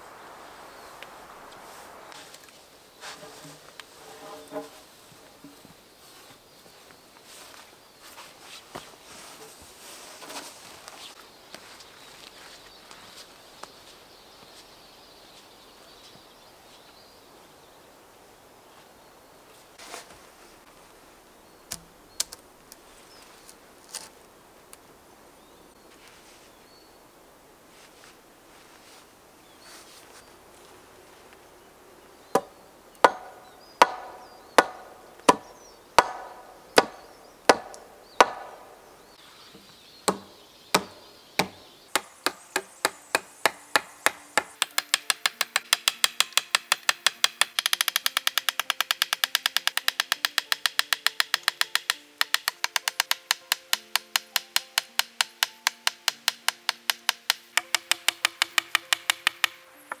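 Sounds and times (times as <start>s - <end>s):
hatchet striking wooden pole: 32.4s - 38.7s, 40.0s - 59.6s.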